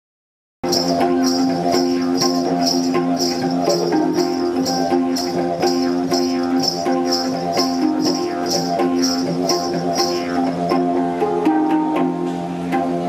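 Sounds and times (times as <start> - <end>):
high hissing pulse: 0.6 - 11.0
didgeridoo drone: 0.6 - 13.0
handpan notes: 0.6 - 13.0.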